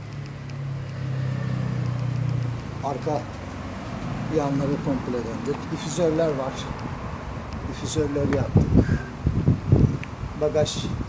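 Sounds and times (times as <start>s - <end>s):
vehicle engine humming: 0.0s - 10.4s.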